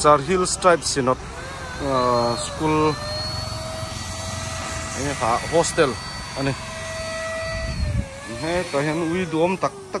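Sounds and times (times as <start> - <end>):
small electric motor whining: 0.0 - 10.0.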